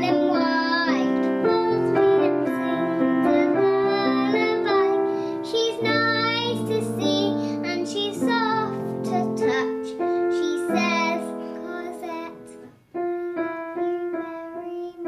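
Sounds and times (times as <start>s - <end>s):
child singing: 0.0s - 15.0s
piano accompaniment: 0.0s - 15.0s.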